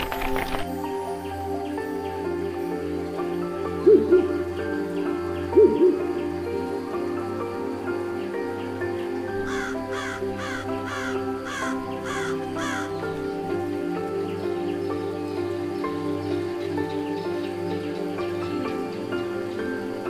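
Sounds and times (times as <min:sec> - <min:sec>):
soft instrumental music: 0:00.0 - 0:20.0
bird calling: 0:05.4 - 0:06.4, 0:08.2 - 0:13.3.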